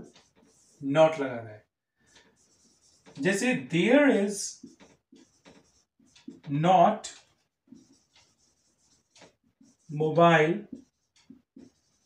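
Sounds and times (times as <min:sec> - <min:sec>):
marker writing on whiteboard: 0:00.0 - 0:00.9, 0:02.0 - 0:12.0.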